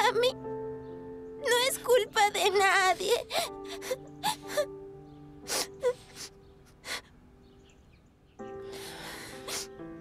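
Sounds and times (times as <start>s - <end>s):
soft sustained background music: 0.0s - 10.0s
gasping breaths: 8.6s - 9.8s.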